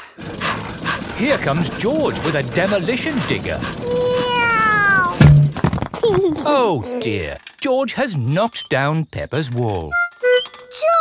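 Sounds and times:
child crying: 3.8s - 5.2s
loud thump: 5.2s - 5.8s.

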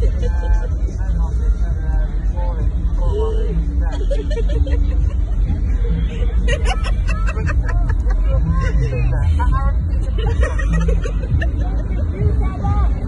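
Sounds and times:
crowd talking: 0.0s - 13.0s
steady low rumble: 0.0s - 13.0s.

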